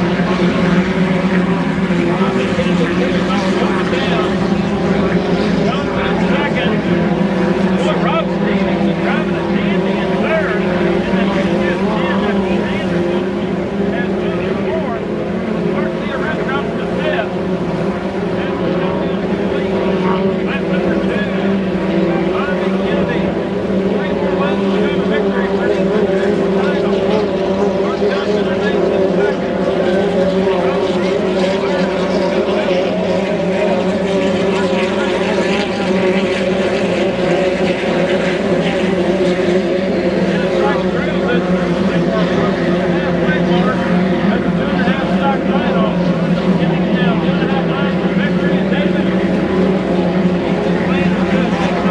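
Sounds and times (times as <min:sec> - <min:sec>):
racing boat engine drone: 0:00.0 - 0:51.9.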